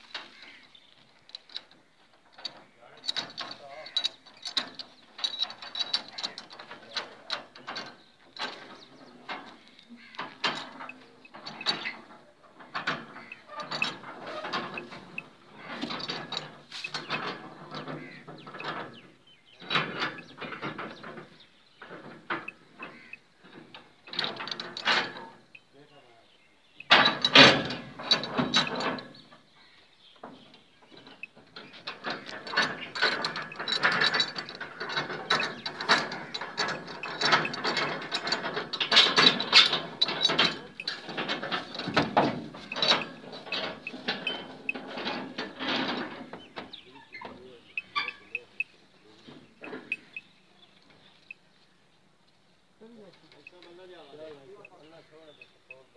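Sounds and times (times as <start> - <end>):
metal livestock cage rattling: 0.0 - 25.7, 26.7 - 29.5, 30.2 - 51.5.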